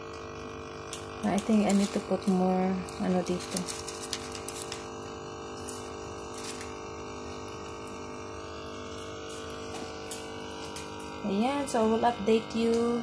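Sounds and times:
small pump humming: 0:00.0 - 0:13.0.

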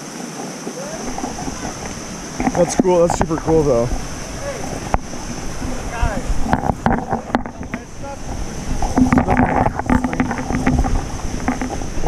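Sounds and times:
falling water: 0:00.0 - 0:12.0
wind rushing: 0:00.9 - 0:12.0
camera handling knocks and rubbing: 0:06.4 - 0:07.8, 0:08.7 - 0:11.9.

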